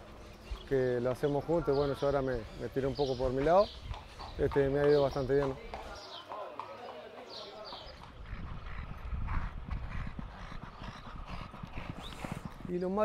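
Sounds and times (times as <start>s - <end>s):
hooves clip-clopping on pavement: 0.0s - 13.0s.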